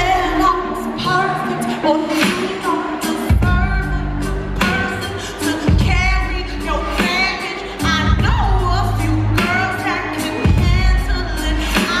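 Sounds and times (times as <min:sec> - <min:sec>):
live pop band music: 0:00.0 - 0:12.0
woman singing into microphone: 0:00.0 - 0:12.0.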